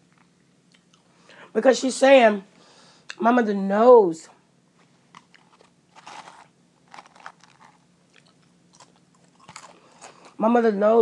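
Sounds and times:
person chewing crunchy food: 0:05.1 - 0:10.4.

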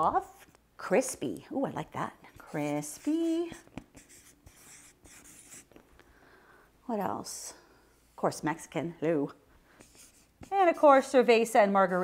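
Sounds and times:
marker scratching on paper: 0:00.0 - 0:00.6, 0:02.3 - 0:05.7, 0:09.8 - 0:10.9.

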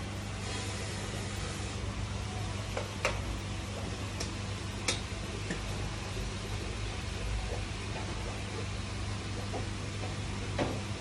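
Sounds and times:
low electrical hum: 0:00.0 - 0:11.0
hiss: 0:00.3 - 0:01.9.

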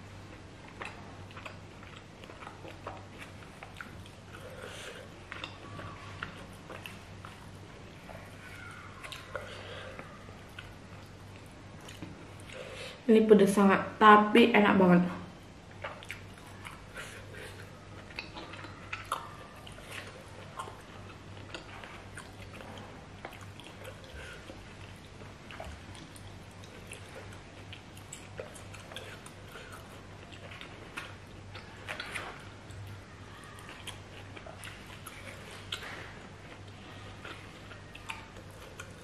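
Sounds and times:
person chewing food: 0:00.0 - 0:13.0, 0:15.6 - 0:39.0.

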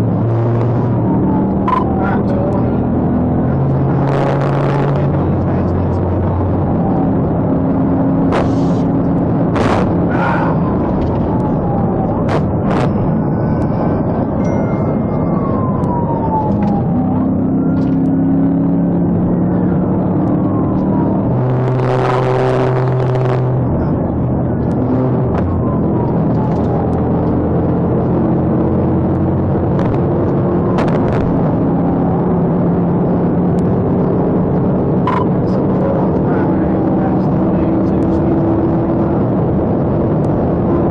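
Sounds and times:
road and engine noise: 0:00.0 - 0:40.9
steady tone siren blast: 0:00.0 - 0:40.9
siren wailing: 0:00.1 - 0:37.7.

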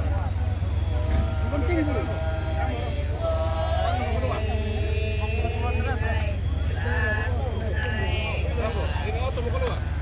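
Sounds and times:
people singing drawn-out calls: 0:00.0 - 0:10.0
steady low rumble: 0:00.0 - 0:10.0.

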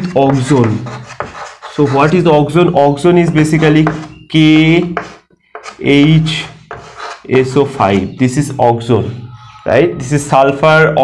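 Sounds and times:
man speaking: 0:00.0 - 0:01.0, 0:01.8 - 0:05.0, 0:05.7 - 0:11.0
chalk scratching on chalkboard: 0:00.0 - 0:02.4, 0:03.2 - 0:04.2, 0:04.8 - 0:08.2.

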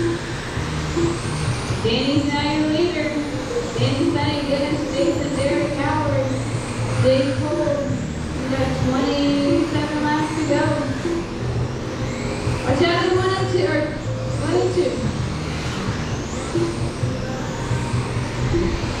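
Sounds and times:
rc car motors whining: 0:00.0 - 0:19.0
announcer over pa system: 0:01.8 - 0:11.4.

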